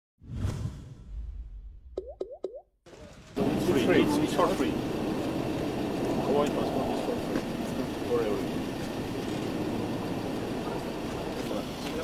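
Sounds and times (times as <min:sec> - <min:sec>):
whoosh sound effect: 0:00.2 - 0:01.9.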